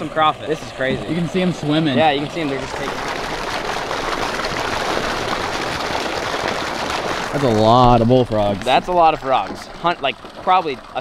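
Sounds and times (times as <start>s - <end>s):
water pouring and splashing: 0.0s - 11.0s.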